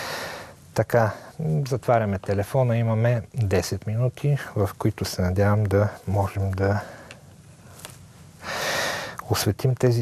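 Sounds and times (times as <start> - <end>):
man breathing in: 0.0 - 0.6, 8.4 - 9.2.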